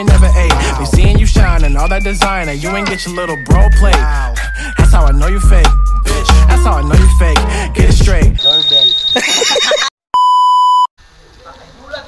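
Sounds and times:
high-pitched electronic test tone: 8.4 - 9.4.

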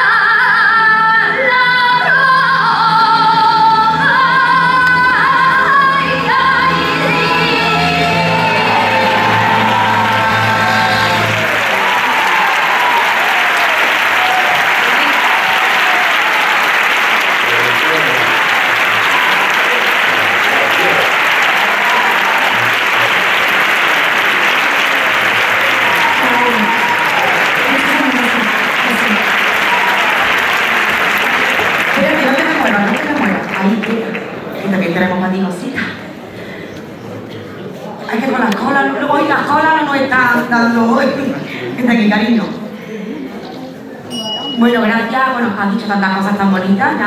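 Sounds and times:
band playing: 2.6 - 32.8
audience applauding: 7.3 - 34.8.

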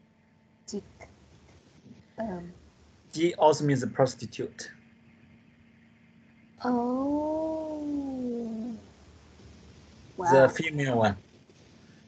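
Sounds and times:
faint line hiss: 0.7 - 6.5, 7.3 - 12.0
person saying ohhh: 10.2 - 11.1.

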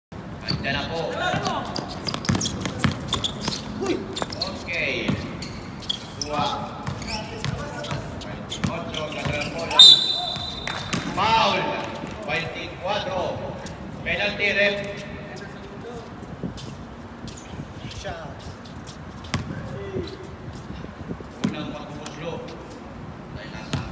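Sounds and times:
basketball bouncing on hard floor: 1.4 - 3.6, 10.4 - 11.2.

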